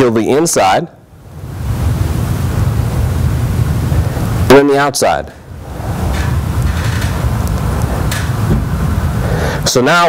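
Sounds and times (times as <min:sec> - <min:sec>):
speech: 0:00.0 - 0:01.0, 0:04.5 - 0:05.4, 0:09.6 - 0:10.0
faint hiss: 0:00.3 - 0:10.0
low rumbling noise: 0:00.8 - 0:09.8.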